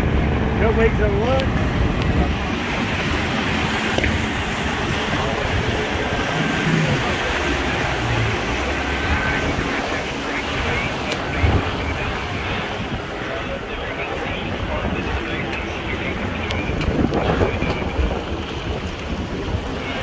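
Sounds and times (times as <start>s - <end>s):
boat wakes washing: 0.0s - 20.0s
motorboats passing at speed: 0.0s - 20.0s
wind buffeting microphone: 0.0s - 20.0s.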